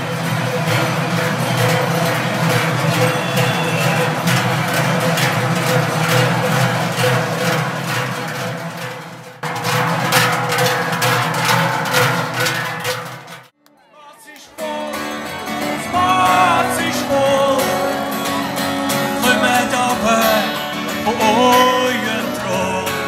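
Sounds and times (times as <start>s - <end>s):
large cowbells clanging: 0.0s - 13.5s, 14.6s - 23.0s.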